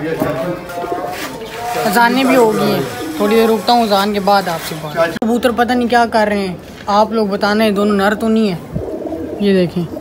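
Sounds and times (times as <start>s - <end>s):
pigeons cooing: 0.7s - 4.2s, 8.2s - 10.0s.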